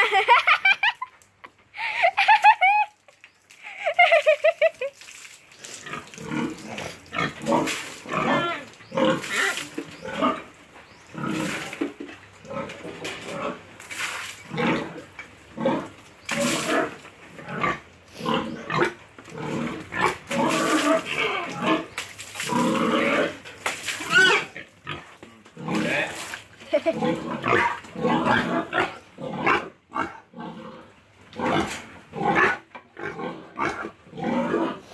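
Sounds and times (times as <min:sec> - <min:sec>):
pig grunting and calling: 0:05.6 - 0:11.8, 0:14.5 - 0:34.9.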